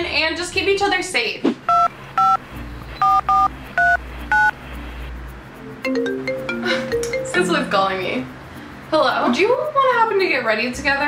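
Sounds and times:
touch-tone dialing beeps: 1.7 - 2.4, 3.0 - 4.6.

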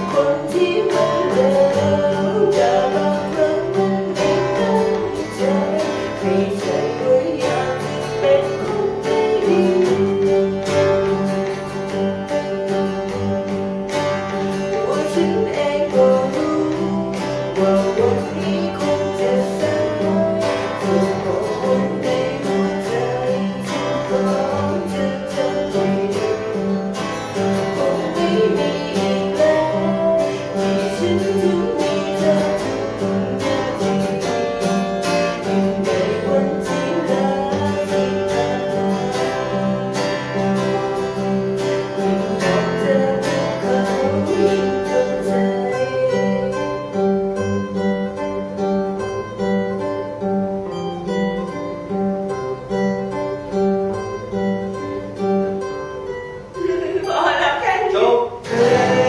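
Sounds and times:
woman singing: 0.0 - 48.6, 56.5 - 59.0
nylon-string acoustic guitar strumming: 0.0 - 59.0.

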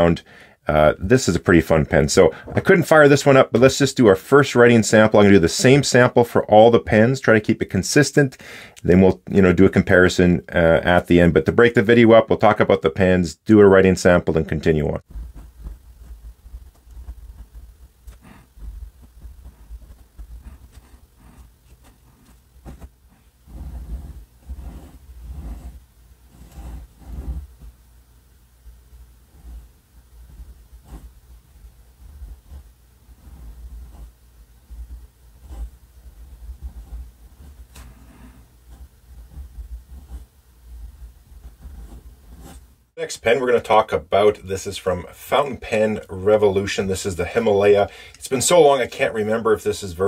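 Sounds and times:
steady low rumble: 15.0 - 42.6
pen nib scratching paper: 15.2 - 27.7, 29.3 - 31.2, 32.0 - 42.7.

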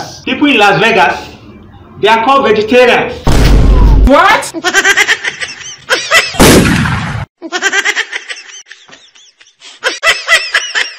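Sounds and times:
loud blast-like boom: 3.2 - 4.1, 6.4 - 7.3
person laughing: 4.6 - 6.4, 7.4 - 10.9.

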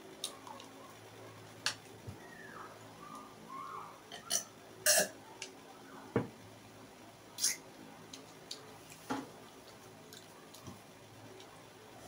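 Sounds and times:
loud burp: 4.1 - 5.2.

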